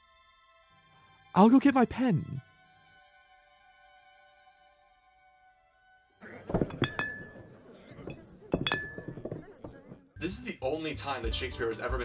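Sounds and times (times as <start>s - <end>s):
rustling and clattering: 6.2s - 10.2s
metallic clinks ringing: 6.6s - 9.5s.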